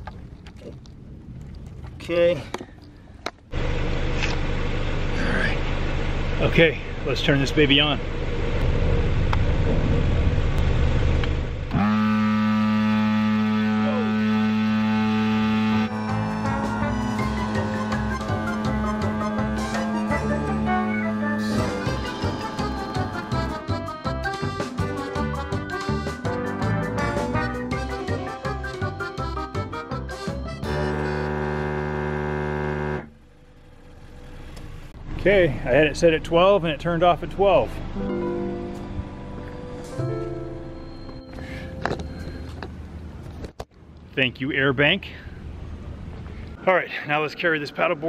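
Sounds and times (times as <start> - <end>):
car idling: 2.8 - 25.0, 30.6 - 39.9
electric pump motor humming: 10.6 - 24.6, 30.6 - 34.7
background music: 15.9 - 31.0, 37.9 - 41.8.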